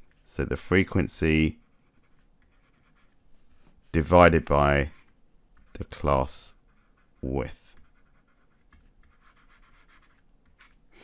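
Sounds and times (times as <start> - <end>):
stylus scratching on tablet: 0.0 - 10.8.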